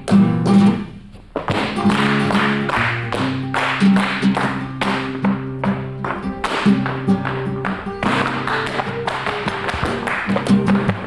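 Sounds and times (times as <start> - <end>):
flamenco guitar: 0.0 - 11.0
percussive taps in rhythm: 0.0 - 11.0.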